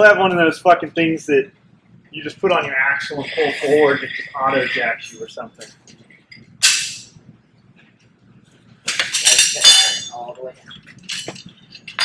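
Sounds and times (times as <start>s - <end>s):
metal tools clinking and clattering: 8.9s - 12.0s.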